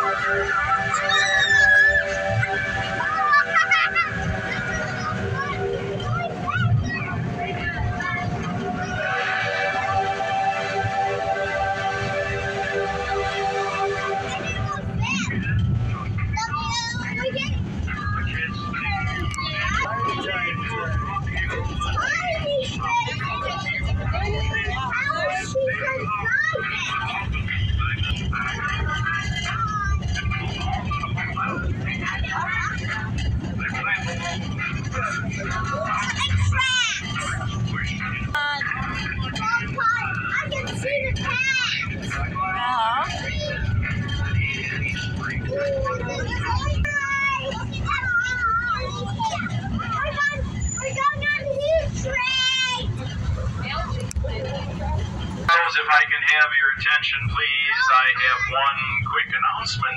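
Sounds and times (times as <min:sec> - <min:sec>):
children chattering and squealing: 0:00.0 - 0:55.6
ride train car rumbling: 0:00.0 - 0:59.9.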